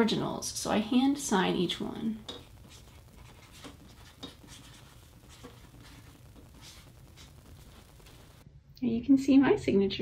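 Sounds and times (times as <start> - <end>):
pen scratching on paper: 2.3 - 7.8.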